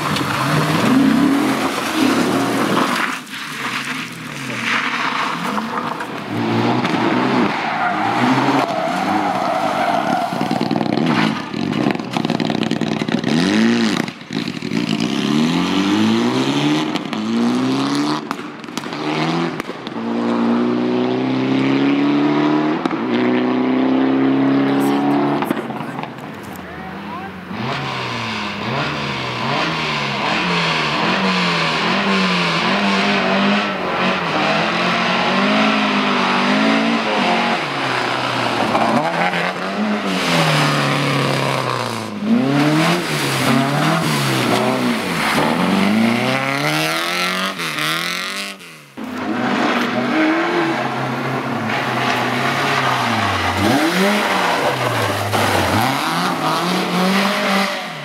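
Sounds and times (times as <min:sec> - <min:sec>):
gravel noise: 0:00.0 - 0:20.8, 0:24.6 - 0:34.1, 0:34.8 - 0:58.0
rally car engines revving: 0:00.0 - 0:58.0.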